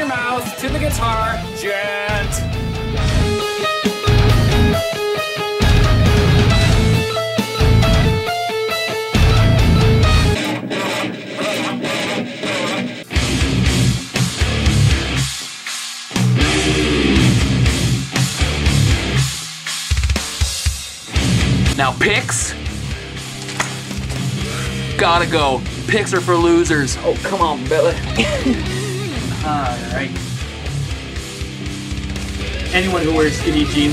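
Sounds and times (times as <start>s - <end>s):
heavy metal music: 0.0s - 33.9s
voice in metal music: 16.2s - 19.1s, 24.1s - 33.9s.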